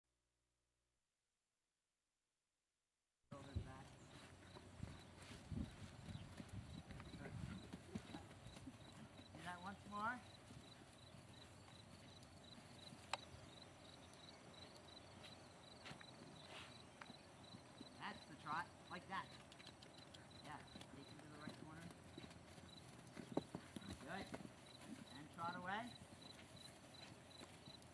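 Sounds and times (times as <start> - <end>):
horse hoofbeats on sand: 3.4 - 27.9.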